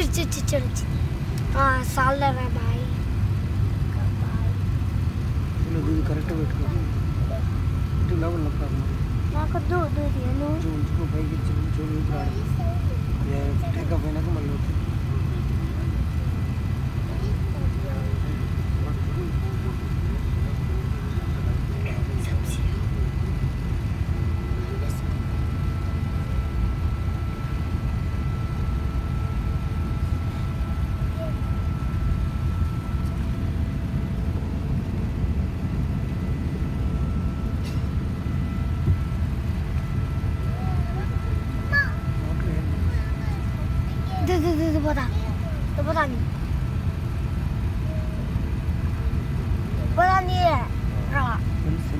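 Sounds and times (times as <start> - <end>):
low rumble of aircraft engines: 0.0 - 51.9.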